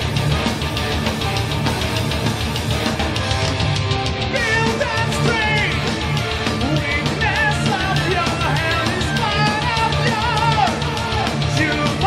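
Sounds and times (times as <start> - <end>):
heavy metal band playing live: 0.0 - 12.0
person singing: 4.3 - 6.0, 6.6 - 12.0.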